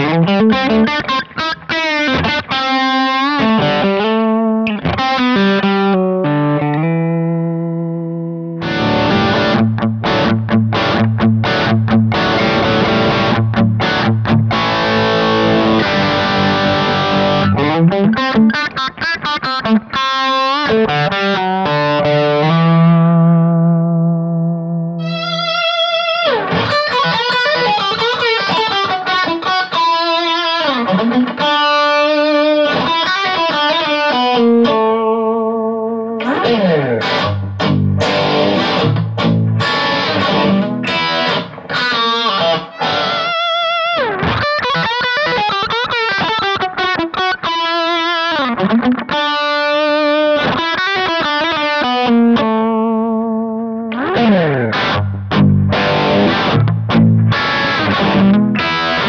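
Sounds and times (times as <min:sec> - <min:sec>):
overdriven electric guitar lead: 0:00.0 - 0:59.0.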